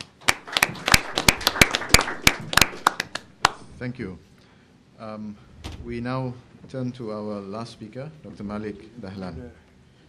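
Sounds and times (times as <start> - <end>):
audience applauding: 0.0 - 3.6.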